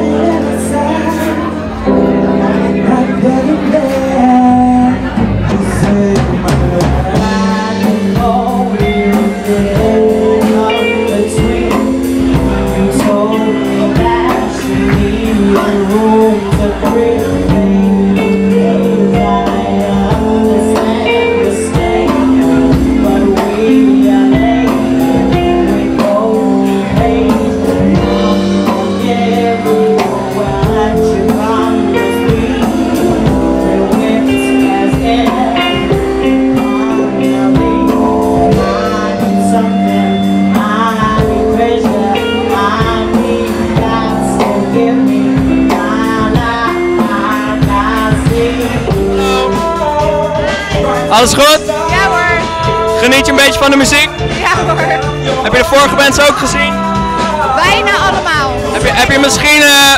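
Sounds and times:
woman singing: 0.0s - 59.2s
electric bass: 0.0s - 59.9s
electric guitar: 0.0s - 59.9s
soul-funk band playing: 0.0s - 59.9s
steady drum beat: 2.9s - 59.9s.

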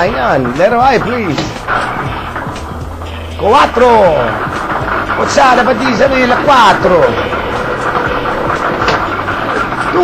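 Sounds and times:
air blower rushing: 0.0s - 10.0s.

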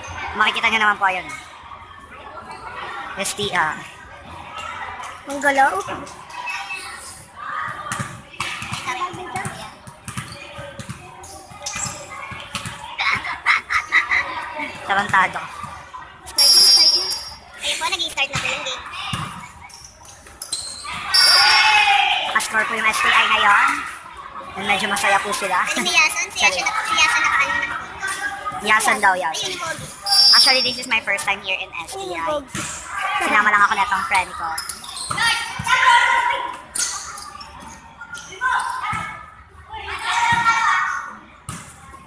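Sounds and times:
volleyball bouncing on gym floor: 7.8s - 13.2s
people shouting in a hall: 20.8s - 22.4s, 35.2s - 36.6s, 38.3s - 41.1s.

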